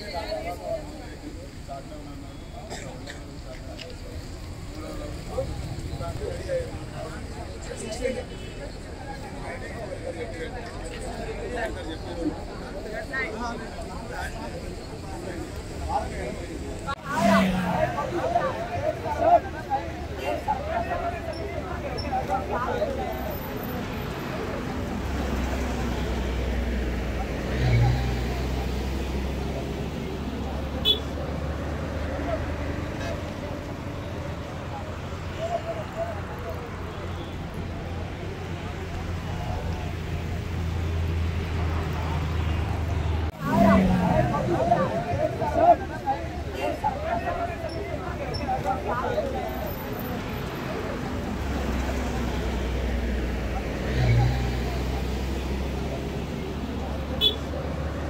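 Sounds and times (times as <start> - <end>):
indistinct crowd voices: 0.0 - 58.0
road traffic rumble: 0.0 - 58.0.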